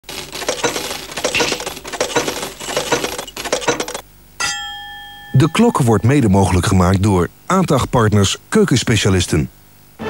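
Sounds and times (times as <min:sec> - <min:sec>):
metal coins clinking: 0:00.1 - 0:04.8.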